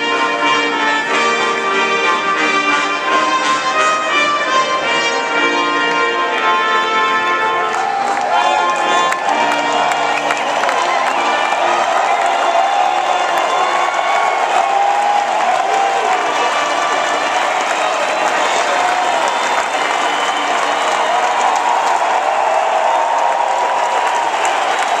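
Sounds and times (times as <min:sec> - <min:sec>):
stadium crowd applauding and cheering: 0:00.0 - 0:25.0.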